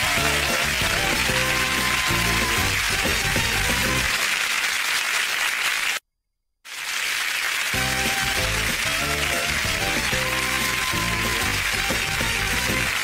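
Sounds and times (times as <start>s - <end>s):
game show theme music: 0.0s - 4.2s, 7.8s - 13.0s
studio audience applause: 0.0s - 6.0s, 6.7s - 13.0s.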